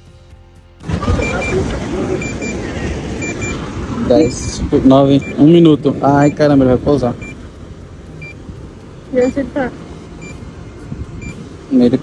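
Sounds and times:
wind rumbling on microphone: 0.8 - 6.0, 6.6 - 11.7
high electronic beeps: 1.0 - 1.6, 2.2 - 2.6, 3.2 - 6.5, 7.1 - 7.4, 8.2 - 8.4, 9.1 - 9.5, 10.2 - 10.4, 11.2 - 11.4.

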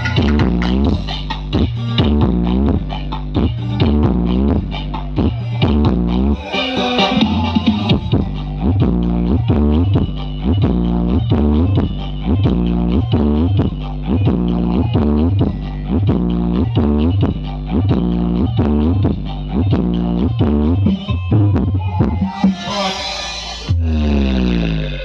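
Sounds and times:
loud dance music with heavy bass: 0.0 - 25.0.

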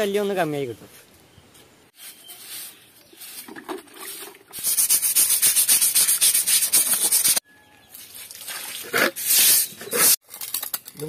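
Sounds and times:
broom swishing over wet floor: 1.9 - 7.4
broom scrubbing wet concrete: 2.0 - 7.4, 8.0 - 10.2.

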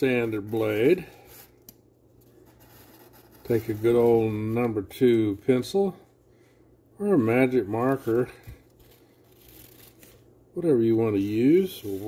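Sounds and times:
low steady hum: 0.0 - 12.0
pencil scratching on sandpaper: 2.4 - 4.2.

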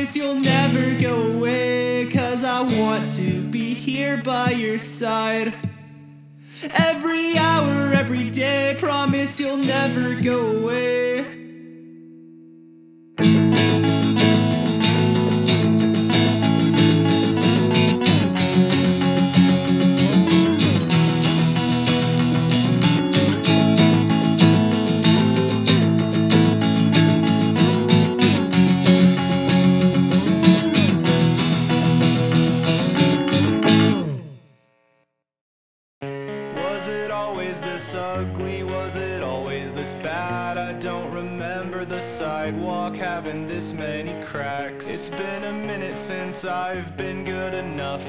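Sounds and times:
strummed guitars and bass: 0.0 - 34.4, 36.0 - 48.0.

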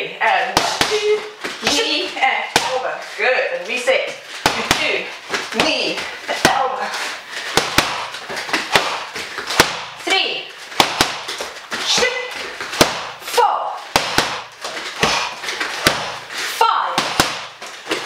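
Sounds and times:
strikes slapping pads: 0.5 - 1.9, 2.5 - 2.8, 7.4 - 10.0, 10.7 - 12.1, 12.7 - 13.2, 13.9 - 16.2, 17.0 - 18.0.

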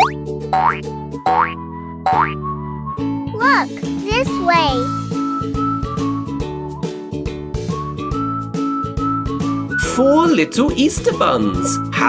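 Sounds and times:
cartoon boing effects: 0.0 - 2.4
light children's music: 0.0 - 12.0.

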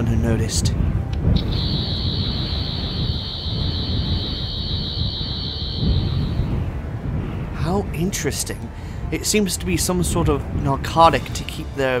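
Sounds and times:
low rumble: 0.6 - 11.8
high warbling sci-fi whine: 1.4 - 6.8.

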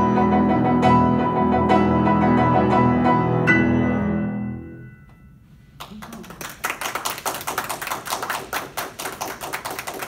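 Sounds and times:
small audience applauding: 5.8 - 10.0.

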